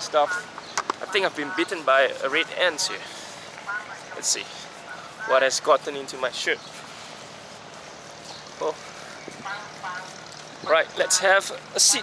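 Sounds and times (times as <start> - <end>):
outdoor background hum: 0.0 - 12.0.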